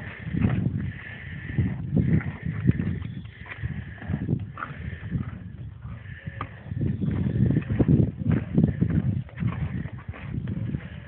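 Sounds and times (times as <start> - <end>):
horse breathing: 0.0 - 11.0
horse chewing crunches: 2.0 - 11.0.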